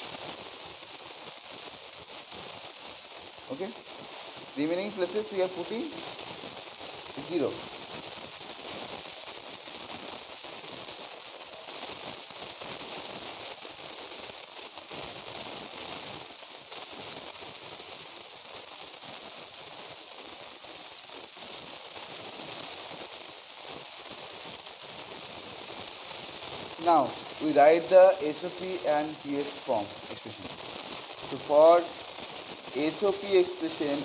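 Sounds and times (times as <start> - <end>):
faint crackle: 0.0 - 34.0
high background hiss: 0.0 - 34.0.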